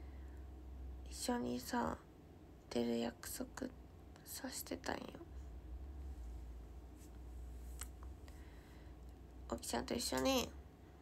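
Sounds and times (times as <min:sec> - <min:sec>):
woman whispering softly: 0:02.8 - 0:05.3.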